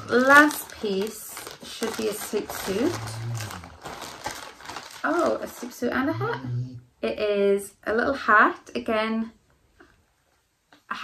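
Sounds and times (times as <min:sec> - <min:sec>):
plastic bag crinkling: 0:00.0 - 0:06.1.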